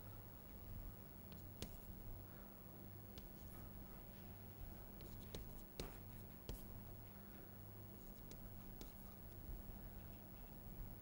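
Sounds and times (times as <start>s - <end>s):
steady low hum: 0.0s - 11.0s
chalk ticking on board: 3.2s - 3.5s, 5.0s - 6.7s.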